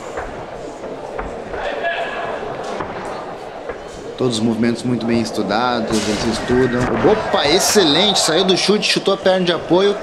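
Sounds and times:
crowd murmur: 0.0 - 10.0
distant shouted voices: 6.3 - 10.0.

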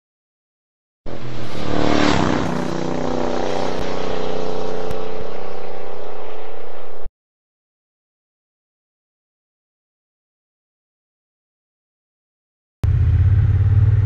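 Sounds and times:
vehicle engine revving: 1.1 - 7.0, 12.8 - 14.0.

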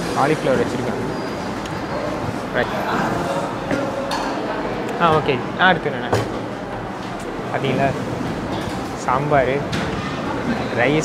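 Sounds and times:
indistinct voices: 0.0 - 11.0
room noise: 0.0 - 11.0.

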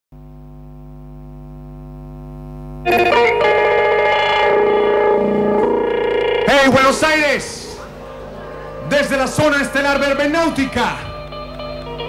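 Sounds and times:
electrical mains hum: 0.2 - 12.0.

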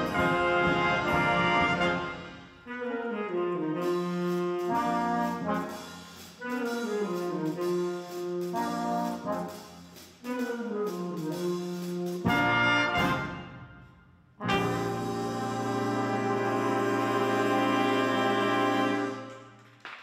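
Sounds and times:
brass band playing chords: 0.0 - 19.8.

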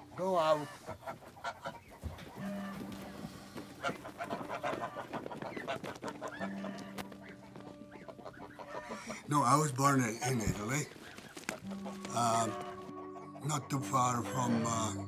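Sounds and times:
geese honking and cackling: 0.0 - 15.0.

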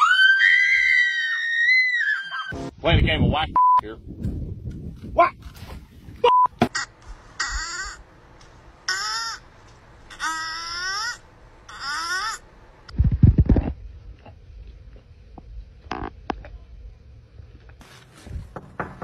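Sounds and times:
harsh caw-like animal calls: 6.7 - 8.1, 8.9 - 9.5.

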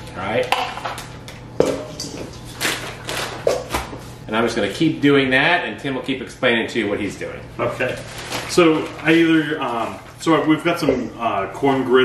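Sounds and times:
lettuce rustling: 7.8 - 10.2.

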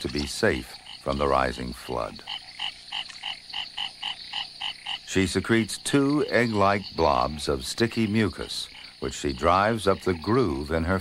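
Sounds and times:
frog calling: 0.0 - 11.0.

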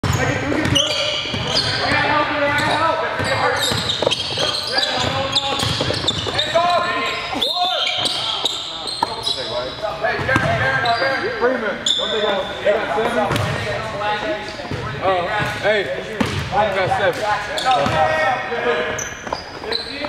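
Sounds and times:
basketballs bouncing on hardwood: 0.0 - 2.1, 3.2 - 6.5, 16.2 - 16.6
players shouting and chatting: 0.0 - 20.0.

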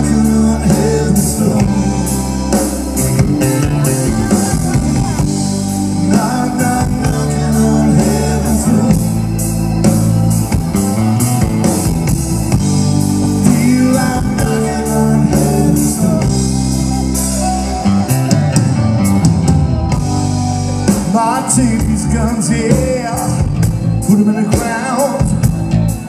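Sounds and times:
electric guitar: 0.0 - 26.0.

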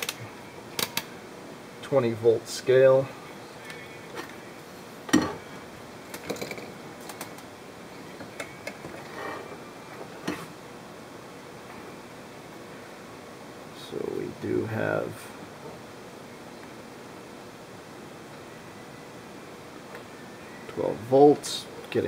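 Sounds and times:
steady low hiss: 0.0 - 22.0.

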